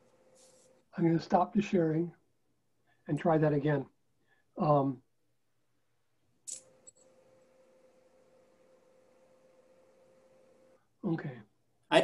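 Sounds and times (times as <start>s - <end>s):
faint steady hum: 6.5s - 12.0s.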